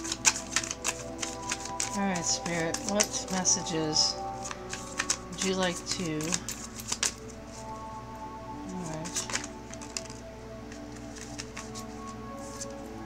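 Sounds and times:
cards being shuffled: 0.0 - 7.7, 8.6 - 12.8
background music: 0.0 - 13.0.

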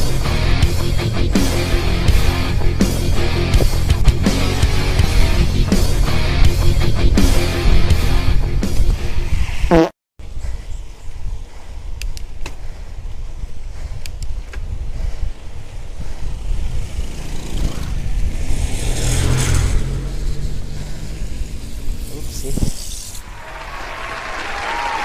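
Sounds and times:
wind buffeting microphone: 8.6 - 22.9
bicycle tyre noise on wet road: 14.4 - 25.0.

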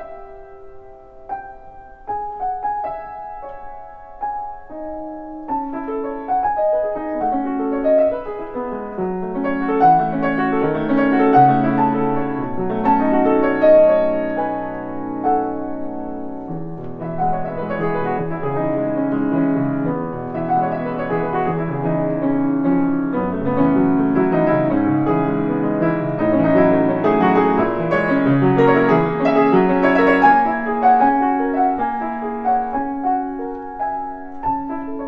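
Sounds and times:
solo classical piano piece: 0.0 - 35.0.

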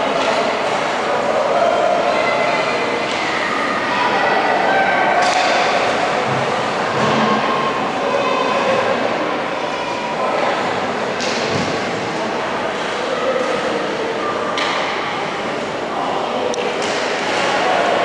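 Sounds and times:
echoing voices of spectators: 0.0 - 18.0.

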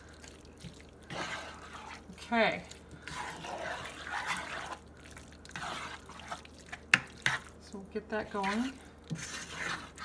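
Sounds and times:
spatula stirring wet filling: 0.0 - 10.0.

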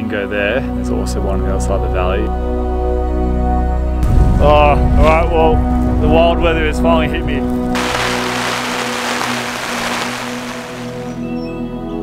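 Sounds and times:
soft background music: 0.0 - 7.7
heavy rain on a tarp: 7.7 - 11.2.

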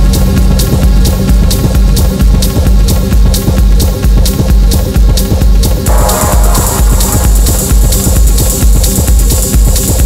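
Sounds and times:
hi-hats: 0.0 - 10.0
kick drum: 0.0 - 10.0
low bass tone: 5.9 - 9.4.

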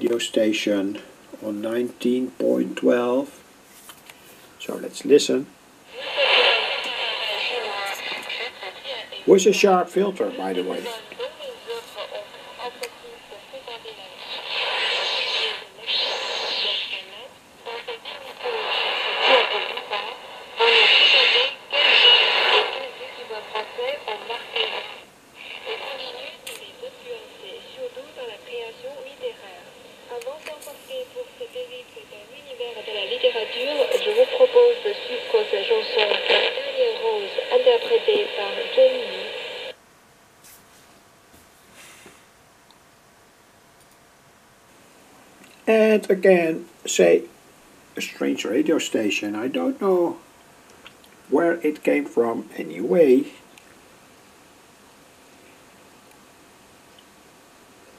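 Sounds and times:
radio hiss: 4.2 - 39.8, 45.7 - 50.3, 51.3 - 53.5
tinny radio speech: 6.0 - 39.7.

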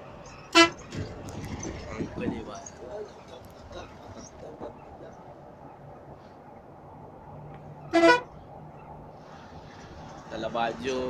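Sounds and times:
coach engine drone: 0.0 - 11.0
road noise: 0.0 - 11.0
coach horn toot: 0.5 - 0.9, 7.9 - 8.3.

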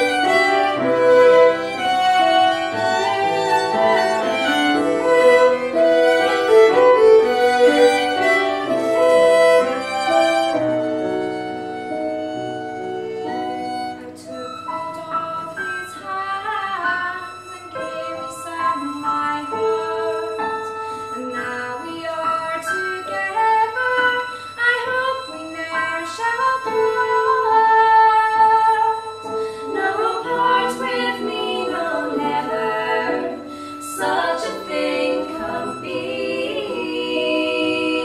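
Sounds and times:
fiddles playing: 0.0 - 15.5, 16.1 - 38.0
digital piano: 0.0 - 38.0
woman singing: 14.0 - 20.5, 21.2 - 38.0.

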